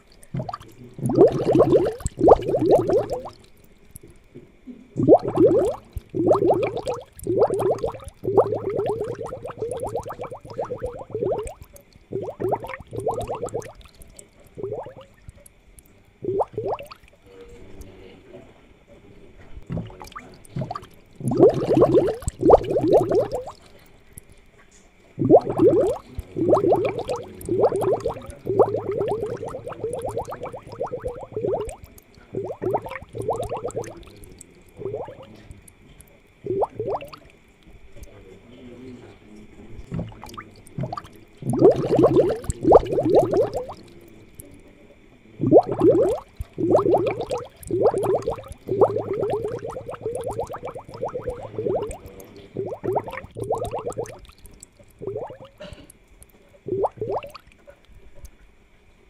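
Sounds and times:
aquarium air bubbles gurgling: 0.0 - 18.4, 19.0 - 58.7
faint high hum: 0.0 - 59.0.

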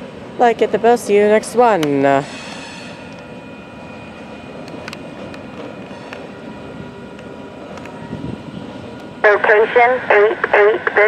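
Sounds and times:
freight train rumbling: 0.0 - 11.0.

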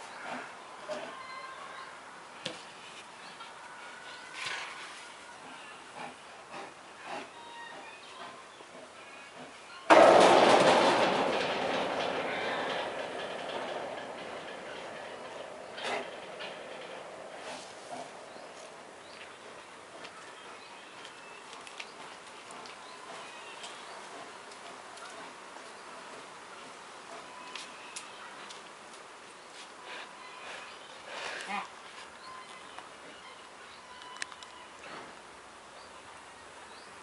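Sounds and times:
loud wooden crash: 9.9 - 18.6.

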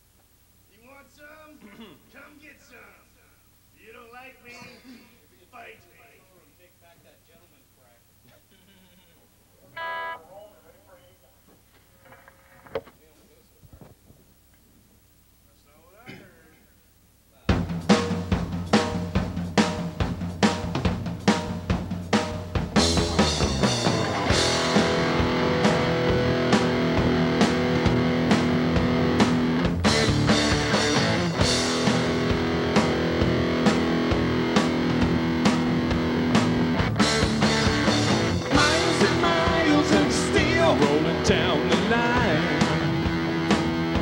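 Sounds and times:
drum kit beats: 17.4 - 44.0
rock band with electric guitars: 17.6 - 44.0.

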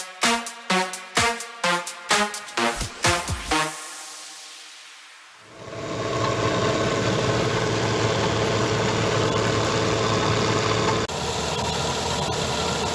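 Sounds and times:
combine harvester engine droning: 5.6 - 12.9.

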